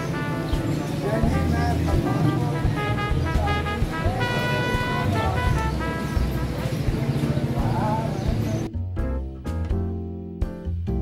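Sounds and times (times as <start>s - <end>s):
people's voices: 0.0s - 8.7s
traffic engine rumble: 0.0s - 8.7s
vehicle horn: 1.4s - 6.7s.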